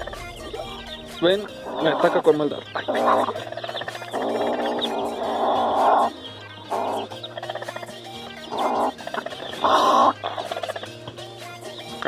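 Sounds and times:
hen calling: 0:00.0 - 0:11.0.

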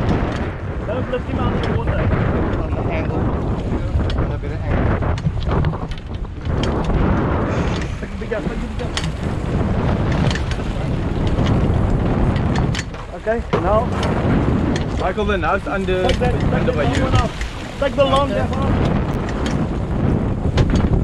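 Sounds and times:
water splashing against boat: 0:00.0 - 0:21.0
wind buffeting microphone: 0:00.0 - 0:21.0.

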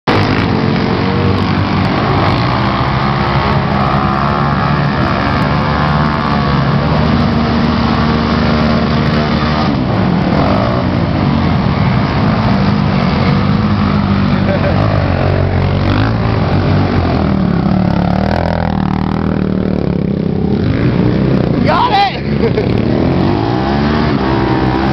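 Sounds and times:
quad engines revving: 0:00.1 - 0:24.9.

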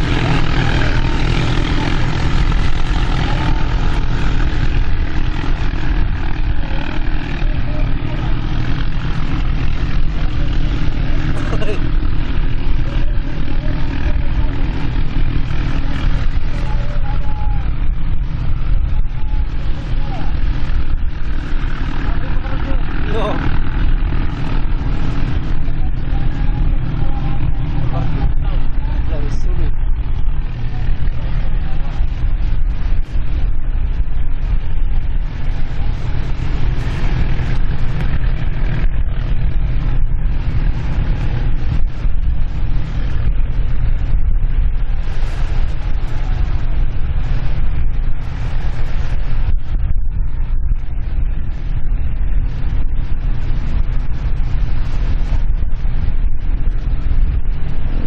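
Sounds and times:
boat engines droning: 0:00.0 - 0:58.0
faint voices: 0:00.0 - 0:58.0.

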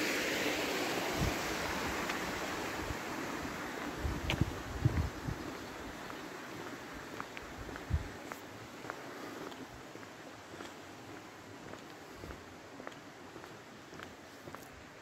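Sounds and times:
water running in drainage channel: 0:00.0 - 0:08.0
soft footsteps: 0:03.8 - 0:15.0.

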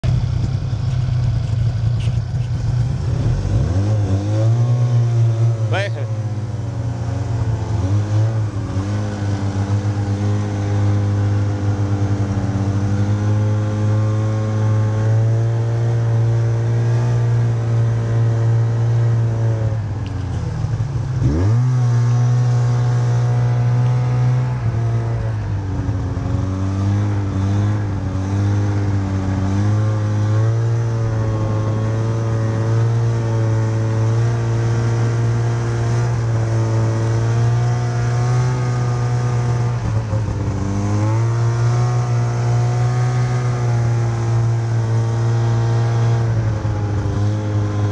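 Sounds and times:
snowmobile engines droning: 0:00.0 - 0:47.9.

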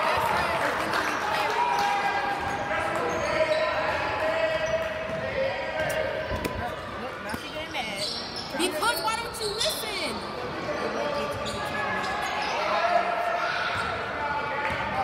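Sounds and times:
voices echoing in gym: 0:00.0 - 0:15.0.

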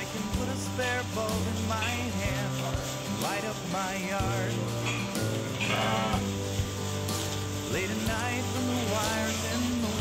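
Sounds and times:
song with steady bass line: 0:00.0 - 0:10.0
goat bleating: 0:05.6 - 0:06.2.

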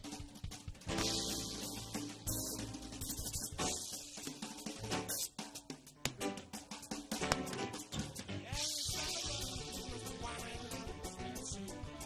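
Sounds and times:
swing jazz band playing: 0:00.8 - 0:12.0.

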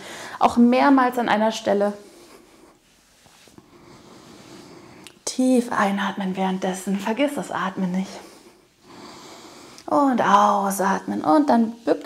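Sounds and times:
woman breathing in deeply: 0:00.0 - 0:00.4, 0:08.2 - 0:09.9.

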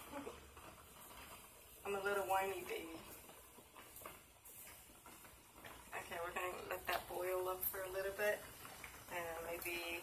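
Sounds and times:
pasta ticking against pot: 0:00.0 - 0:10.0.

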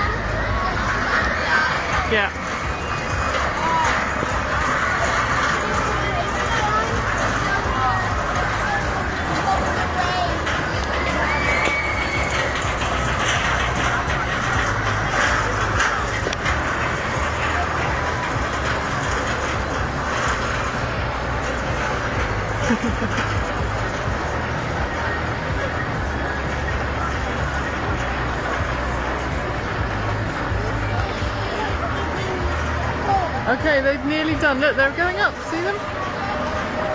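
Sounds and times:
crowd chatter: 0:00.0 - 0:36.9
steady low rumble: 0:00.0 - 0:36.9.

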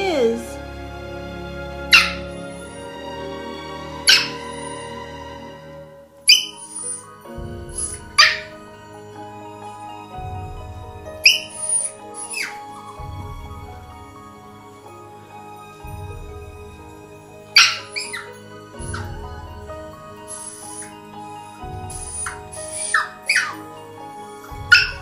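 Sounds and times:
soft background music: 0:00.0 - 0:25.0
puppy whining: 0:01.9 - 0:02.9, 0:04.0 - 0:05.0, 0:06.3 - 0:08.6, 0:11.2 - 0:13.0, 0:17.5 - 0:25.0
puppy whimpering: 0:06.3 - 0:07.1, 0:17.6 - 0:19.1.

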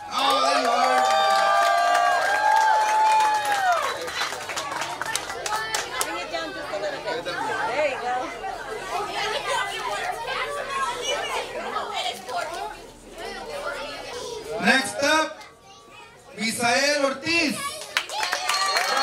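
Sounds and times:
many voices chatting: 0:03.8 - 0:19.0
children's voices: 0:04.0 - 0:14.7, 0:15.4 - 0:16.4, 0:17.4 - 0:19.0.

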